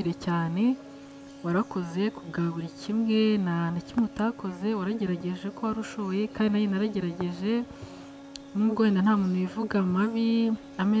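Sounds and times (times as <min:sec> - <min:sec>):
faint steady hum: 0:00.0 - 0:11.0
woman talking: 0:00.0 - 0:11.0.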